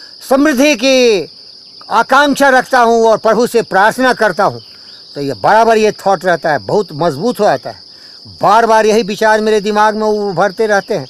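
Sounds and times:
insect chorus trilling: 0.0 - 11.0
man talking: 0.2 - 4.6, 5.2 - 11.0.

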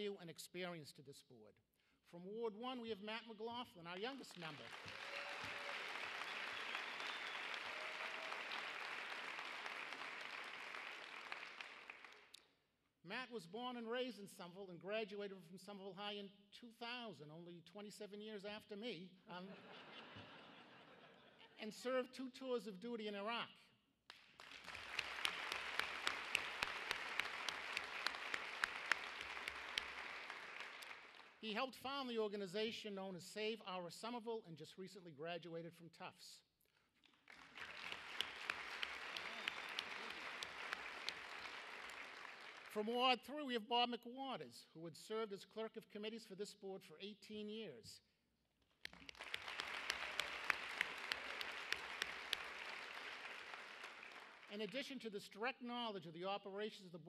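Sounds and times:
audience applauding: 4.0 - 12.3, 24.1 - 31.4, 37.1 - 42.8, 48.8 - 54.7.

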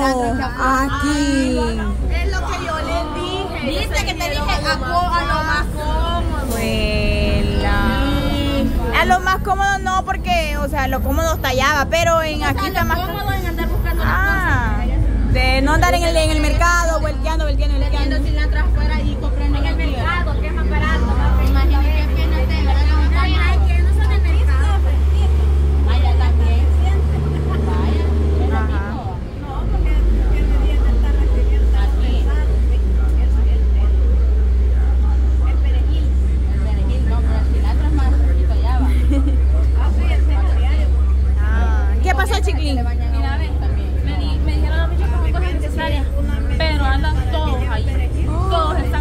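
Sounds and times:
people talking: 0.0 - 49.0
vehicle engine rumble: 0.0 - 49.0.

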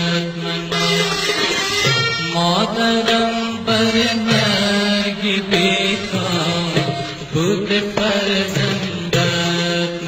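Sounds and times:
chant-like vocal music: 0.0 - 10.0.

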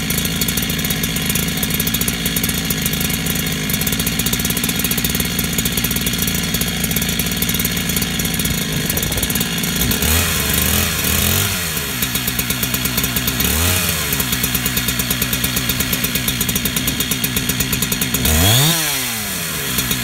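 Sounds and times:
chainsaw idling and revving: 0.0 - 20.0.

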